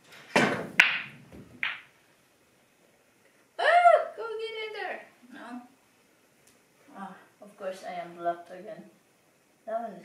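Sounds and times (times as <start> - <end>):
pool balls clicking and rolling: 0.0 - 2.0.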